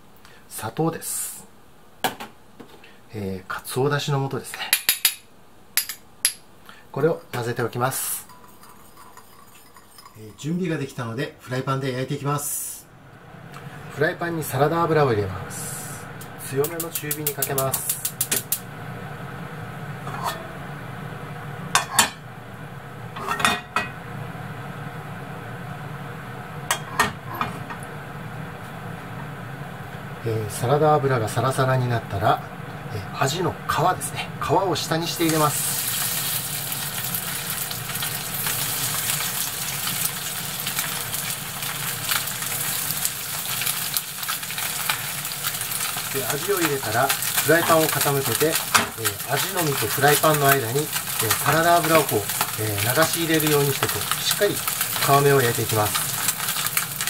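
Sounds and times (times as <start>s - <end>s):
fish sizzling in frying pan: 15.6s - 25.1s, 34.8s - 57.0s
gas igniter clicking: 16.2s - 18.7s.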